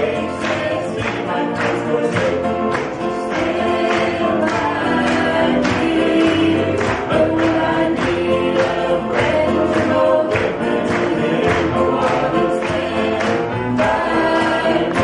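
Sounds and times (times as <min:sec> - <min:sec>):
accompaniment with steady beat: 0:00.0 - 0:15.0
women singing gospel in harmony: 0:00.0 - 0:15.0.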